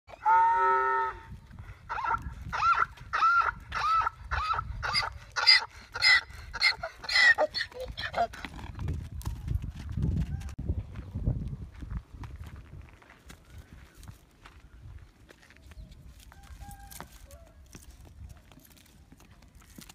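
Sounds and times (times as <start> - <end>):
donkey braying: 1.9 - 8.5.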